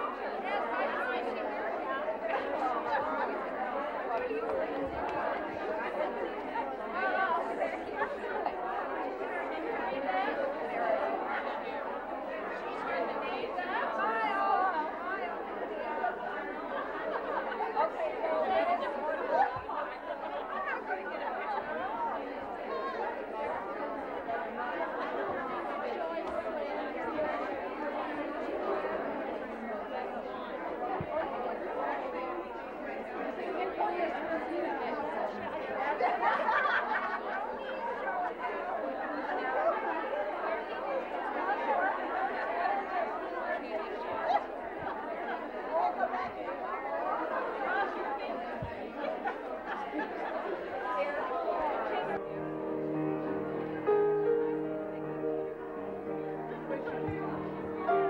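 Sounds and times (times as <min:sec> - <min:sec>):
women chattering: 0:00.0 - 0:58.0.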